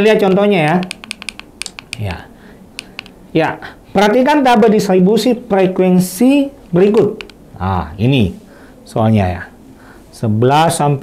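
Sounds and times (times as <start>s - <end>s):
light clicks: 0.8s - 2.2s, 2.8s - 3.2s, 7.2s - 7.4s.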